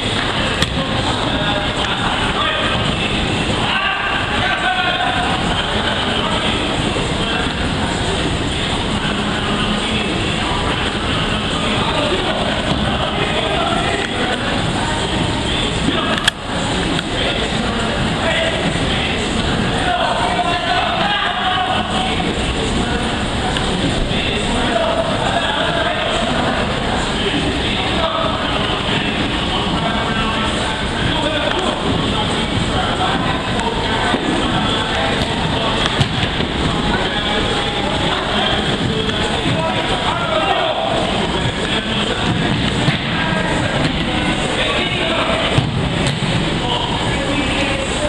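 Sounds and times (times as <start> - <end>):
players' voices: 0.0 - 48.0
steady arena rumble: 0.0 - 48.0
steady noisy background: 0.0 - 48.0.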